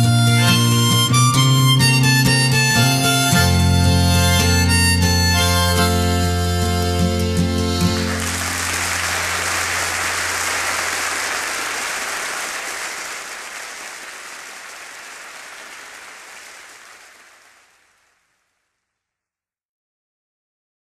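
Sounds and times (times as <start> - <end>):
audience applauding: 7.8 - 18.2.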